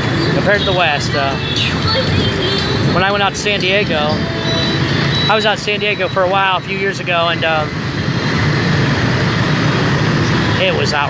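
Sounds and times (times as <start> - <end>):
motorbike traffic: 0.0 - 11.0
scooter engine and road noise: 0.0 - 11.0.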